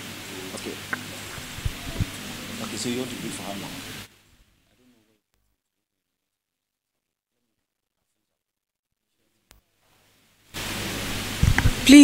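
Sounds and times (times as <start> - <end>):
microphone hiss: 0.0 - 5.6, 9.1 - 12.0
person speaking: 11.8 - 12.0.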